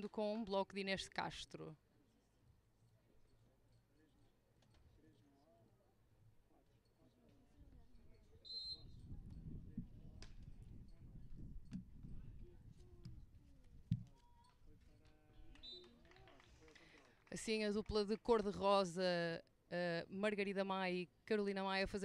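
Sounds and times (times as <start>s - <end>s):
wind on microphone: 8.8s - 13.9s.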